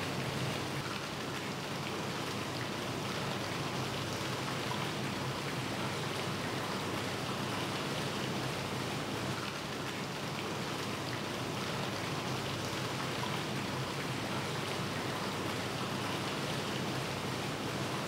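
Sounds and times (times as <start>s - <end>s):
water rushing and splashing: 0.0s - 18.0s.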